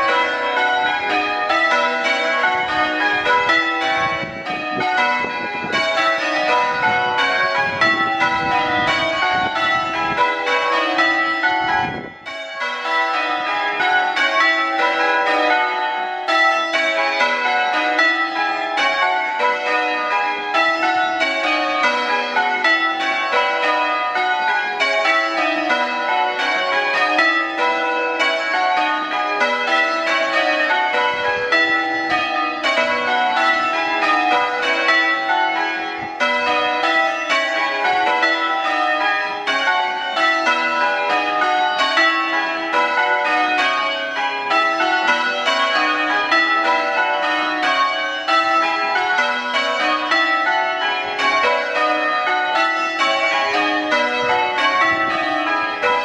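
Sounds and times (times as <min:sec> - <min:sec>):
church bells ringing changes: 0:00.0 - 0:56.0.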